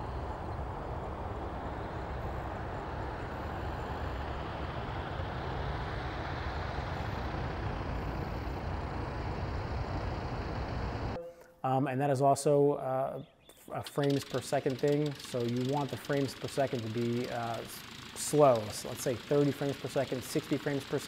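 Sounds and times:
light airplane engine and propeller: 0:00.0 - 0:11.2, 0:13.2 - 0:21.0.

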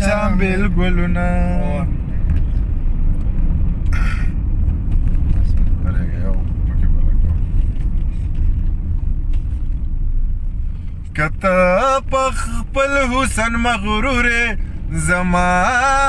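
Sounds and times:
car engine rumble and road noise: 0:00.0 - 0:16.0.

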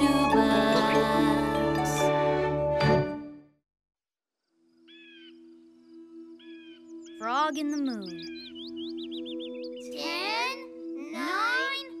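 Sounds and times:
bird-like chirp: 0:04.8 - 0:11.0.

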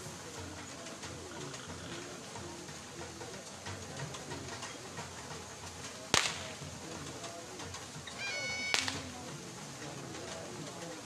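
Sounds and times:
faint outdoor background: 0:00.0 - 0:11.0
sharp crack: 0:06.1 - 0:06.8, 0:08.7 - 0:09.1.

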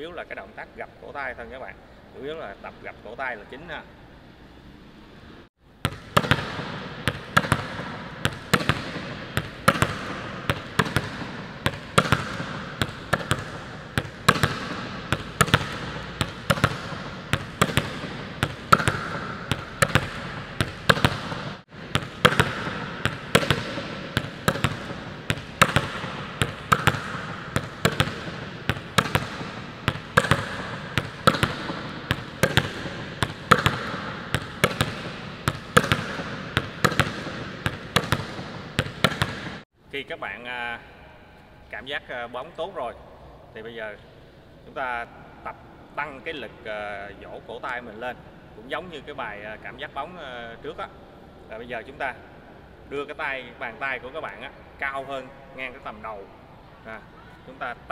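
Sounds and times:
volleyball smacking on court floor: 0:05.8 - 0:39.6.

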